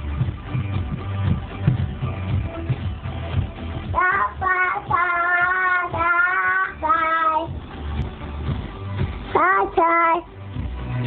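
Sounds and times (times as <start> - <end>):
recorded pop music: 0.0 - 11.0
toddler singing: 3.9 - 7.5, 9.4 - 10.3.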